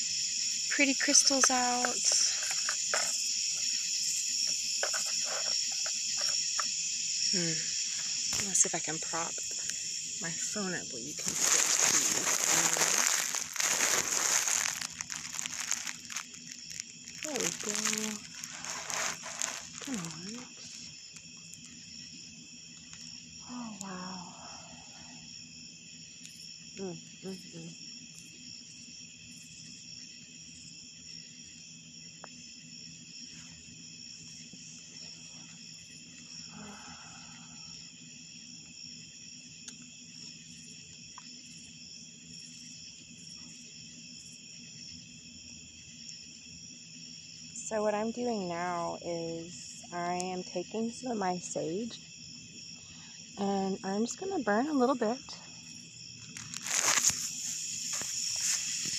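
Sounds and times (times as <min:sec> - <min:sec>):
crickets chirring: 0:00.0 - 0:58.9.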